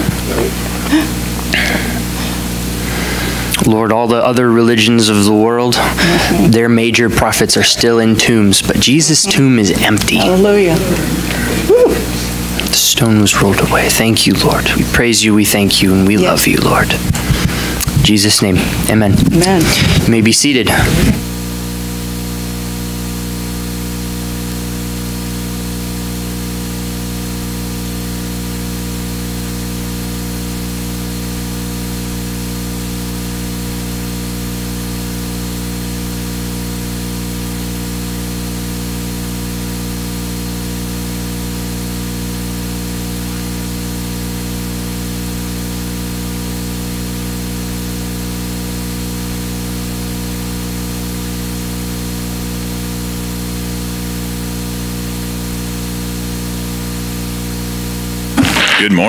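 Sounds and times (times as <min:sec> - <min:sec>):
low electrical hum: 0:00.0 - 0:59.0
static hiss: 0:00.0 - 0:59.0.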